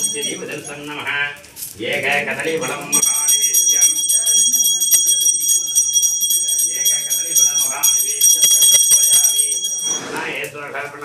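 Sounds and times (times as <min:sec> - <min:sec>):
hand bell ringing: 0:00.0 - 0:00.8, 0:02.9 - 0:10.2.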